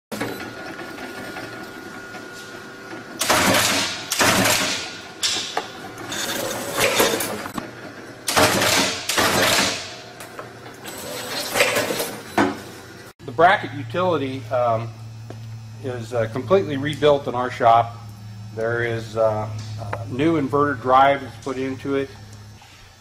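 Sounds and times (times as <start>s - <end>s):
taping machine running: 0.1s - 13.1s
steady hum: 1.9s - 23.0s.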